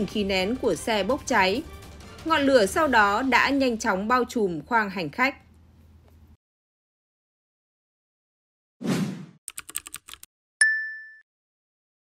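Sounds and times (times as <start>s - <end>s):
typing clicks: 9.5s - 10.3s
bright ding: 10.6s - 11.3s.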